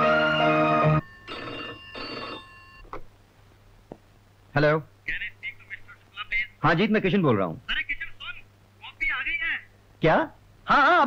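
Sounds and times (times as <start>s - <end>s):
film music with sustained chords: 0.0s - 2.8s
telephone ringing: 0.0s - 2.9s.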